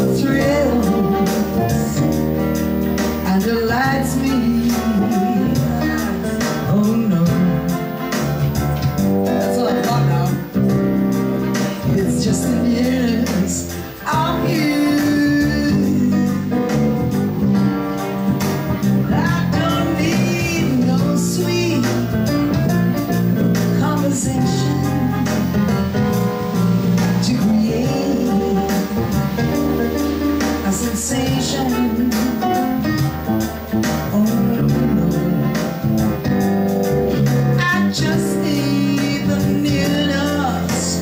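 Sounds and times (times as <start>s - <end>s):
woman singing into a microphone: 0.0s - 2.3s, 3.2s - 8.0s, 9.1s - 10.8s, 11.8s - 16.7s, 19.0s - 25.8s, 26.8s - 29.8s, 30.4s - 33.1s, 33.8s - 35.7s, 37.6s - 41.0s
jazz guitar accompaniment: 0.0s - 41.0s.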